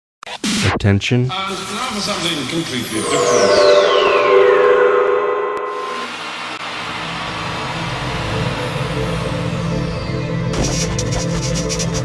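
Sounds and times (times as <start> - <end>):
high tone gliding downward: 2.8 - 7.2
held electronic tones: 2.9 - 6.5
low steady drone: 3.0 - 10.2.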